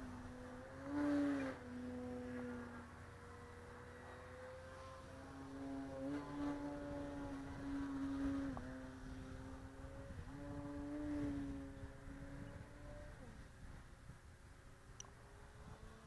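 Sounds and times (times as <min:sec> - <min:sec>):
model plane motor buzzing: 0:00.0 - 0:16.0.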